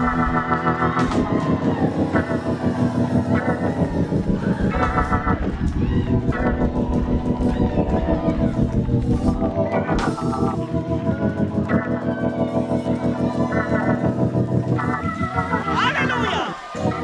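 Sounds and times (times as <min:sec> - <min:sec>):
drum kit beat: 0:00.0 - 0:10.6
organ chords with vibrato: 0:00.0 - 0:17.0.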